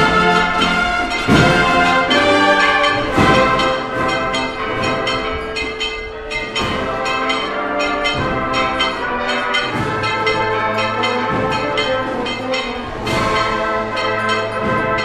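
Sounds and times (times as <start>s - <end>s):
brass band playing slow march: 0.0s - 15.0s.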